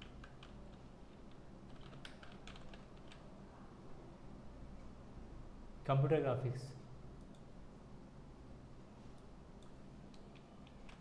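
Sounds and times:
computer keyboard typing: 0.0s - 3.3s.

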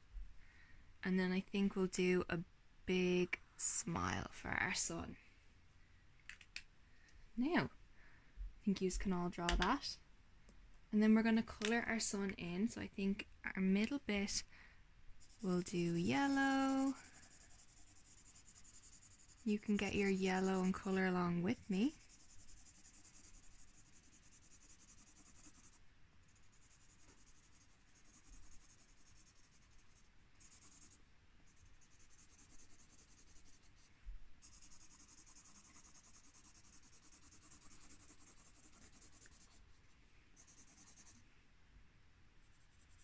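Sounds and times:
marker scribbling on paper: 15.2s - 39.6s, 40.4s - 41.2s, 42.5s - 43.0s.

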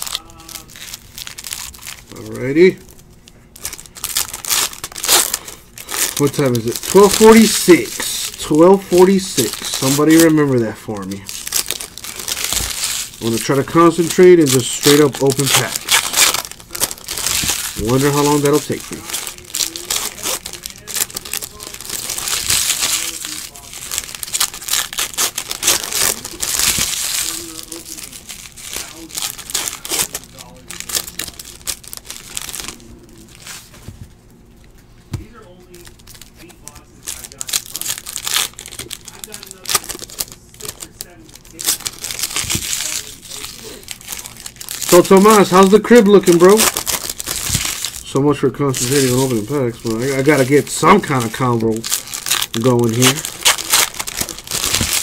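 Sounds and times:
foil wrappers tearing and crinkling: 0.0s - 33.9s, 35.2s - 55.0s
cards being shuffled: 3.6s - 48.0s, 48.7s - 55.0s.

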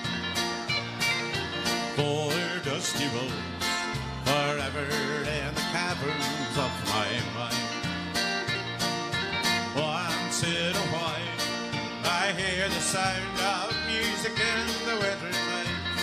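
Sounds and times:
bass guitar: 0.0s - 16.0s
electric guitar: 0.0s - 16.0s
lead melody with bending notes: 0.0s - 16.0s.

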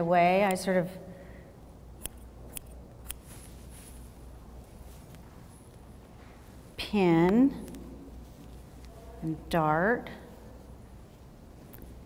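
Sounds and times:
scissors snipping fabric: 2.0s - 3.2s.

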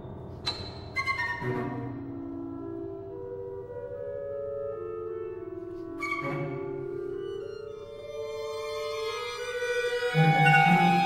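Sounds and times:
chamber ensemble playing: 1.0s - 11.0s.

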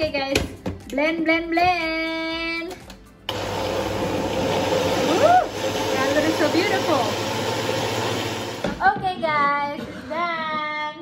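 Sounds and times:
blender motor whine: 3.3s - 8.8s.

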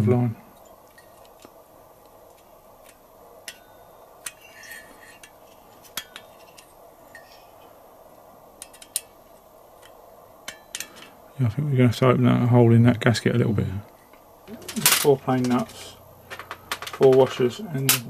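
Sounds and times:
faint workshop room tone: 0.0s - 18.0s.

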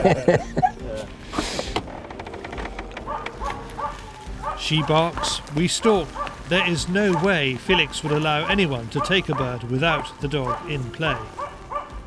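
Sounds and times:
dog barking: 3.0s - 12.0s.

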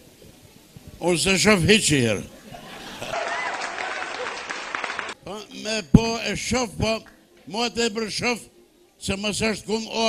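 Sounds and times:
audience applauding: 3.0s - 5.2s
voices among clapping: 3.1s - 5.2s.

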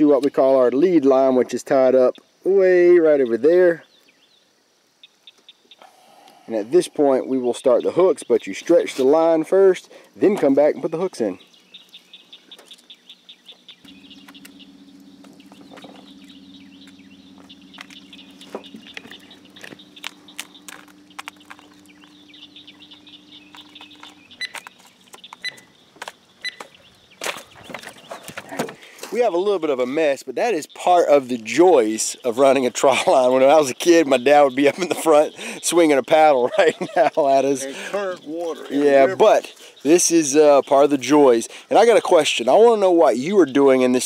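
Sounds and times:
birds chirping: 0.0s - 44.0s
small animal chirping: 11.4s - 25.8s
low steady hum: 11.4s - 29.0s.

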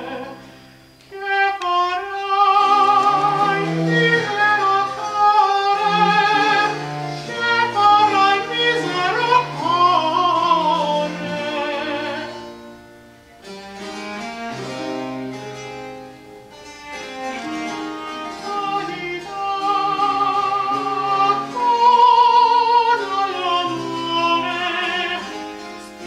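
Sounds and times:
opera singer with vibrato: 0.0s - 0.5s, 1.1s - 12.4s, 18.1s - 25.6s
baroque chamber ensemble: 0.0s - 26.0s.

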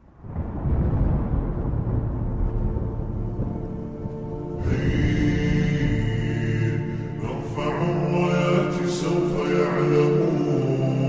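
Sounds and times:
deep heavy bass rumble: 0.0s - 7.6s.

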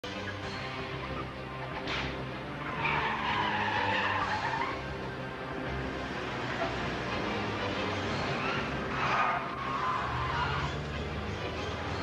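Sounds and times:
background music: 0.0s - 12.0s
car tyres squealing on asphalt: 1.1s - 5.0s, 6.3s - 11.0s.

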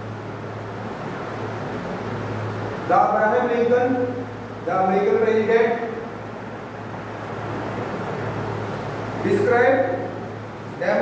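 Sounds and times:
low even hum: 0.0s - 11.0s
steady background hiss: 0.0s - 11.0s.

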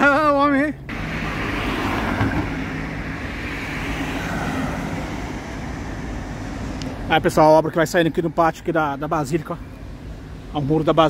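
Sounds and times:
car passing: 0.8s - 11.0s.

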